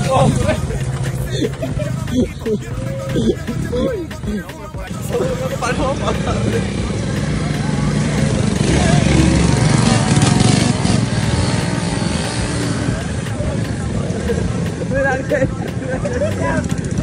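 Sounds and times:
small motorcycle engines running: 5.5 - 17.0.

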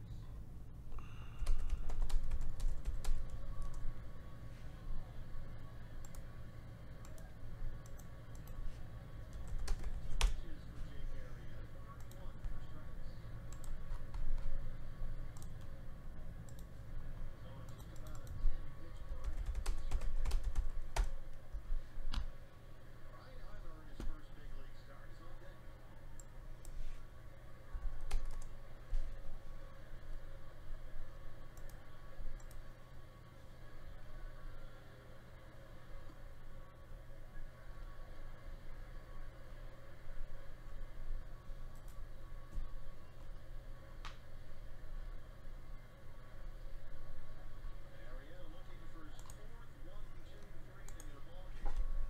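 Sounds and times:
low hum: 0.0 - 19.2, 19.9 - 52.0
computer keyboard typing: 1.0 - 4.0, 7.0 - 8.6, 9.2 - 10.5, 13.4 - 14.6, 17.6 - 21.2, 27.8 - 28.6.

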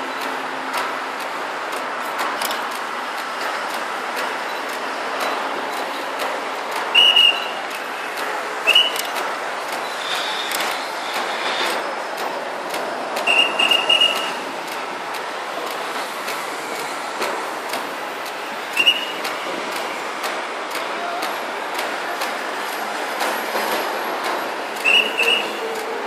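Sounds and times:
road traffic passing: 0.0 - 26.0
shrill whistle blasts: 6.9 - 7.6, 8.6 - 9.0, 13.2 - 14.4, 18.8 - 19.2, 24.8 - 25.6.

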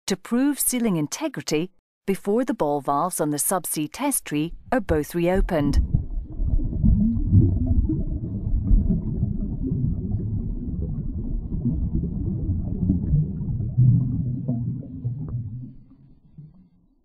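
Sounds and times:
low underwater rumble: 4.5 - 17.0.

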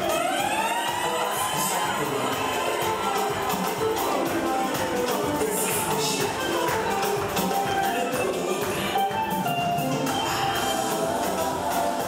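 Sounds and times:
party music: 0.0 - 12.0.

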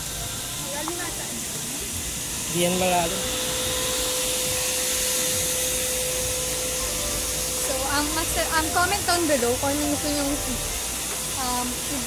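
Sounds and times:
hissing rushing noise: 0.0 - 12.0
mid-pitched hum: 0.0 - 12.0.

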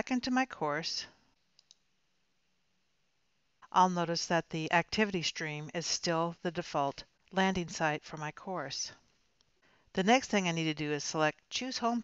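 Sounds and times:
computer mouse clicks: 1.6 - 1.8.

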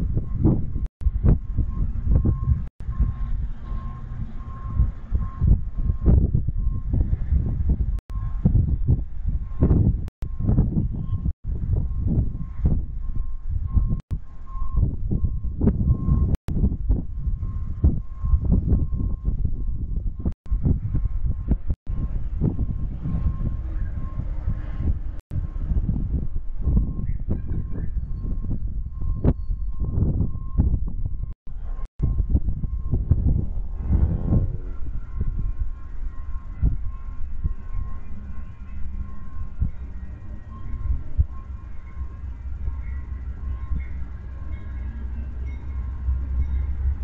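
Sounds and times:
crossing signal warning beeps: 0.0 - 16.5, 17.2 - 20.4, 21.2 - 25.1, 26.6 - 47.0
passenger train rumble: 0.0 - 47.0.

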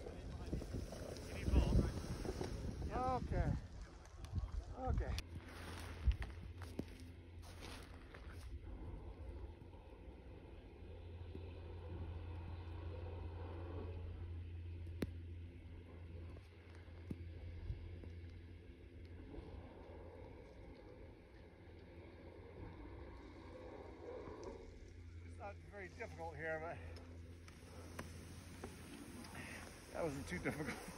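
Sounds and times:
skis scraping over snow: 0.0 - 4.7, 5.3 - 8.5, 25.2 - 30.9
wind rumble on microphone: 0.0 - 25.7.

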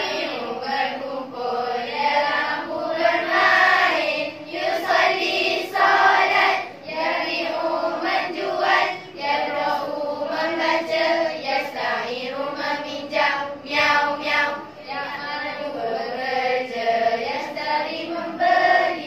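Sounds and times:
girls singing in unison: 0.0 - 19.0.

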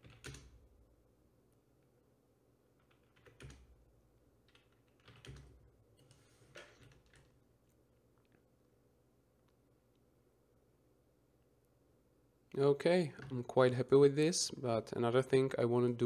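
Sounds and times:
faint keyboard keystrokes: 4.4 - 7.4.

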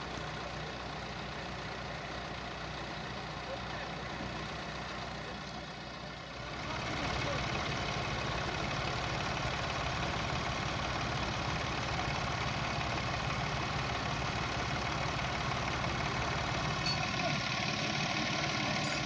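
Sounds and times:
tractor engine running: 0.0 - 19.0.

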